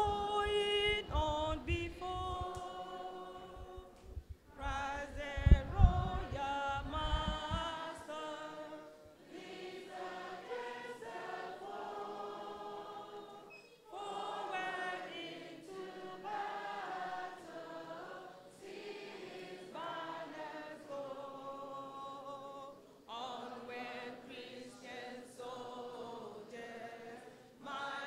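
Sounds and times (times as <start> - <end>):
woman singing: 0.0 - 4.0, 4.6 - 8.8
children singing together: 7.7 - 21.6, 23.3 - 28.0.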